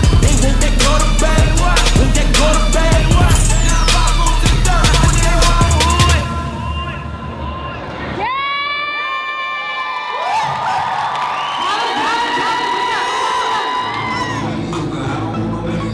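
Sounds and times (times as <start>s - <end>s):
audience cheering: 5.4s - 14.5s
high-pitched screams: 5.8s - 14.6s.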